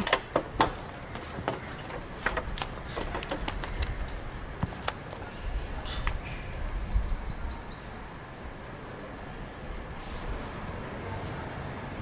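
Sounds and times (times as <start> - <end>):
birds calling: 0.0 - 4.4.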